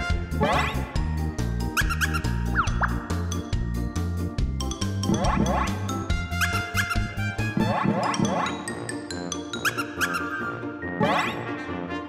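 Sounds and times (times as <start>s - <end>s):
bouncy children's music: 0.0s - 12.0s
squeaky rising pitch glides: 0.4s - 1.0s, 1.7s - 3.1s, 5.0s - 8.9s, 9.6s - 11.5s.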